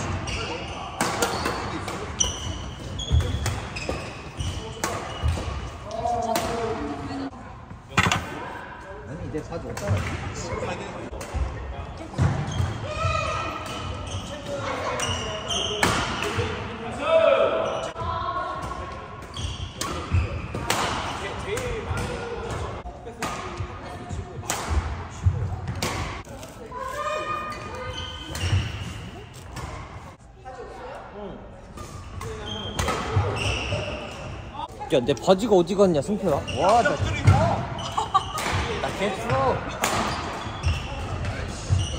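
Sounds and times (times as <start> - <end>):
shoes squeaking on court floor: 0.0 - 6.0, 12.0 - 16.5, 19.2 - 20.6, 25.3 - 30.1, 31.7 - 41.9
rackets hitting shuttlecock: 1.0 - 6.8, 38.4 - 41.8.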